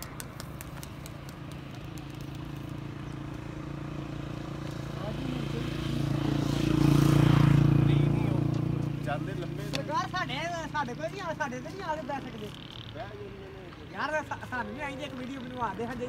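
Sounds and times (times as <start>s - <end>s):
vehicle engine hum passing: 0.0s - 16.0s.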